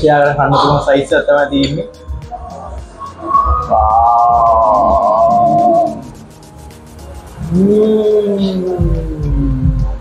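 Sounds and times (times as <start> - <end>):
background music: 0.0 - 10.0
man saying ooh: 7.4 - 10.0.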